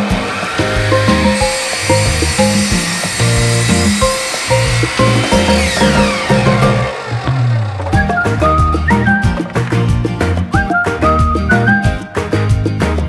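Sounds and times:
miter saw whine: 0.0s - 9.4s
saw cutting wood: 0.0s - 9.9s
background music with beat: 0.0s - 13.0s.

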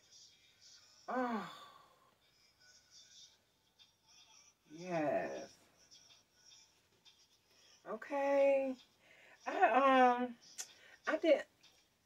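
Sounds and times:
woman's voice: 1.1s - 1.7s, 4.7s - 5.5s, 7.9s - 8.8s, 9.4s - 10.4s, 11.0s - 11.5s.

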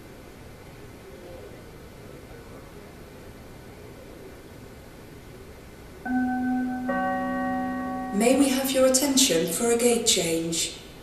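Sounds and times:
public-address chime: 6.1s - 10.5s.

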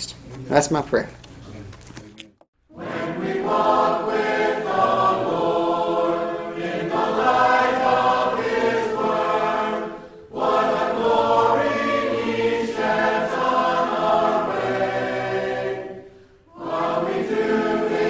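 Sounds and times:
choir singing a hymn: 2.7s - 18.0s.

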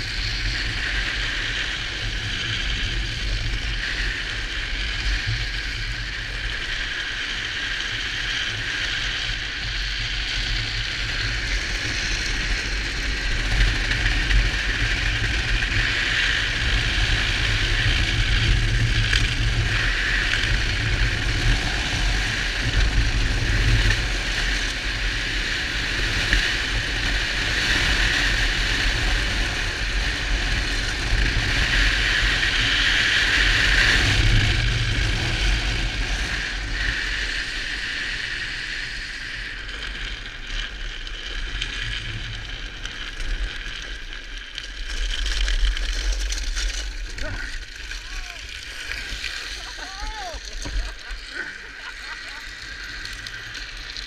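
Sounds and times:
plastic wheels sliding on asphalt: 0.0s - 54.0s
wind rumbling on microphone: 0.0s - 54.0s.

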